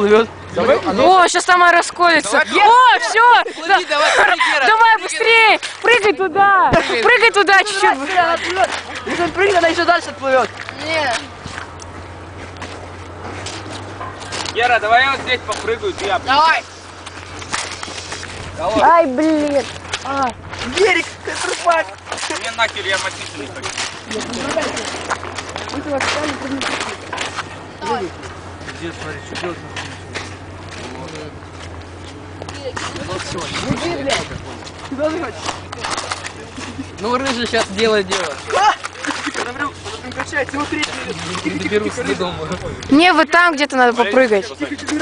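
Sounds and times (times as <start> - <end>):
young men calling out: 0.0 - 11.4, 14.5 - 16.8, 18.5 - 31.5, 32.2 - 45.0
wind rumbling on microphone: 32.7 - 34.9.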